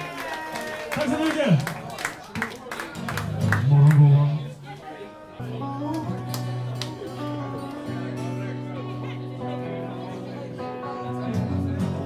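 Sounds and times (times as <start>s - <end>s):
guitar playing held chords: 3.1s - 12.0s.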